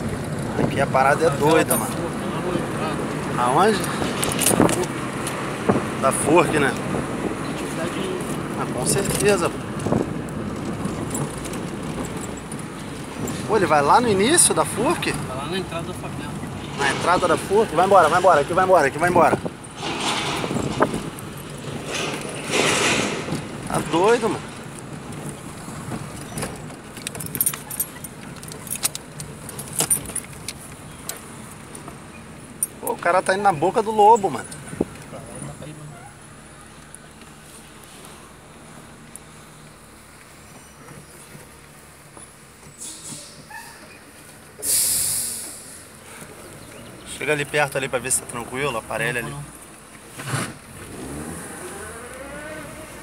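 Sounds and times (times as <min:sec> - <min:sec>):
car engine and road noise rumble: 0:00.0 - 0:53.0
rushing hiss: 0:44.6 - 0:46.0.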